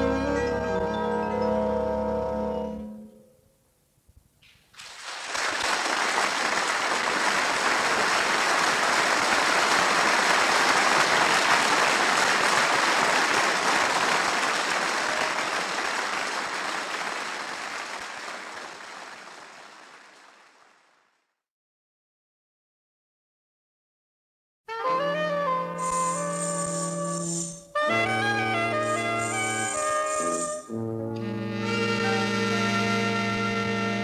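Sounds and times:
audience applauding: 4.8 - 21.2, 28.7 - 30.7.

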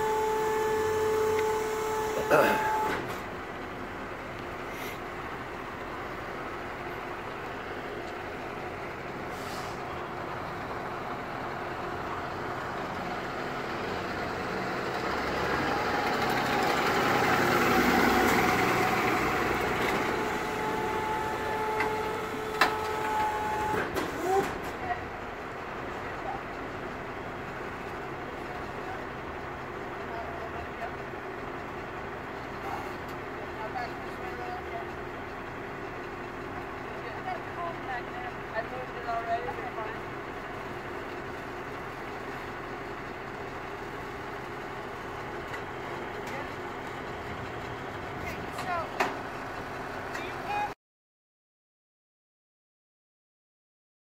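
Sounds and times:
vehicle engine idling: 0.0 - 50.7.

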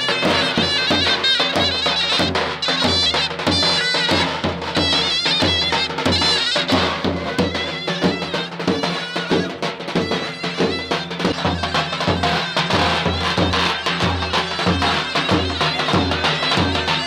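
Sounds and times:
big drum beats: 0.0 - 17.0
shrill zurna melody: 0.0 - 17.0.

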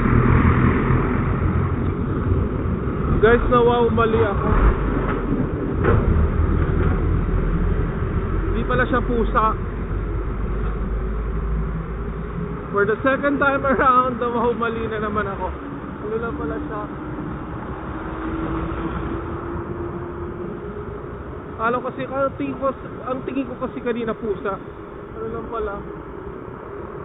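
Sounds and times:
low traffic rumble: 0.0 - 27.0
road noise from moving vehicle: 0.0 - 27.0
wind buffeting microphone: 0.0 - 27.0.

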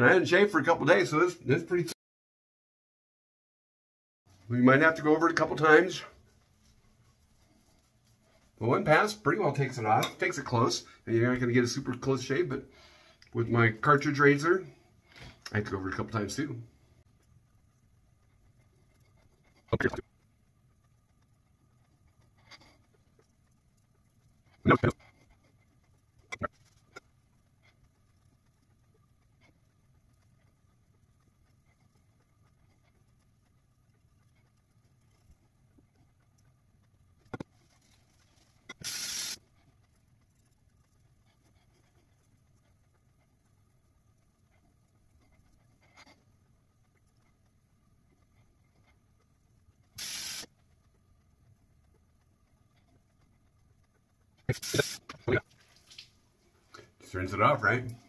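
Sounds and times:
water splashing at a sink: 54.5 - 56.4.

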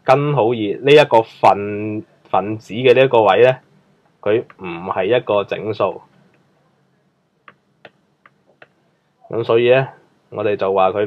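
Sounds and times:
stylus tapping on pen tablet: 7.4 - 8.8.

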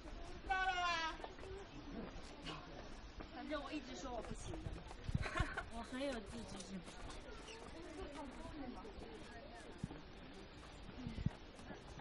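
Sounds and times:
footsteps on stone steps: 0.0 - 12.0
hikers' voices chattering: 0.0 - 12.0.

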